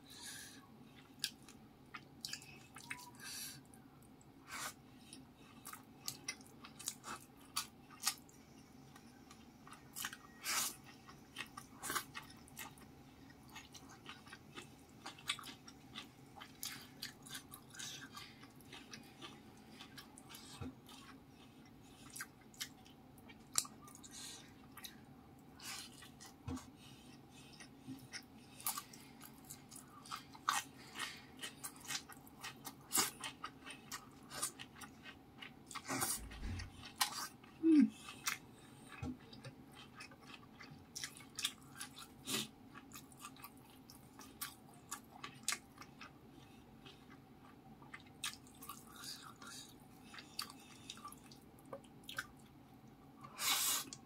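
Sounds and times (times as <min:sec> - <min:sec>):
chewing food: 0:00.9 - 0:54.0.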